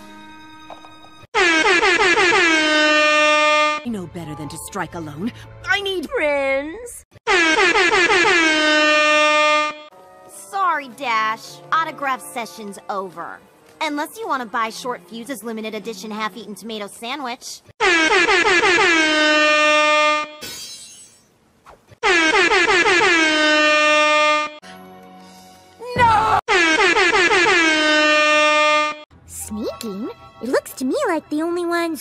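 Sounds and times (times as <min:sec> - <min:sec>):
air horn blasts: 0:01.4 - 0:03.8, 0:07.3 - 0:09.9, 0:17.8 - 0:20.4, 0:22.0 - 0:24.6, 0:26.5 - 0:29.0.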